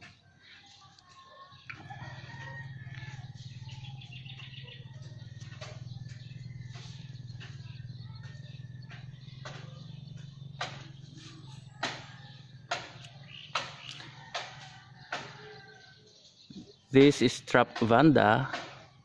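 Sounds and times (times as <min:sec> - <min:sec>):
birds calling: 0:00.0 - 0:19.0
sharp clicks: 0:12.7 - 0:14.5.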